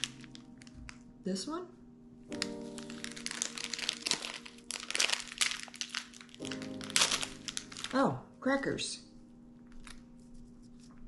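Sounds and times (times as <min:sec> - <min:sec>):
plastic wrapper crinkling: 0:00.0 - 0:01.1, 0:02.3 - 0:08.2, 0:09.6 - 0:11.0
soft background music: 0:00.0 - 0:11.0.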